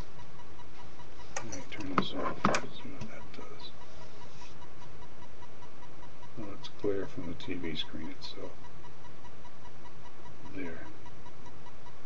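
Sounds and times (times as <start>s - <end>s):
rapidly pulsing high tone: 0.0s - 12.0s
steady background hiss: 0.0s - 12.0s.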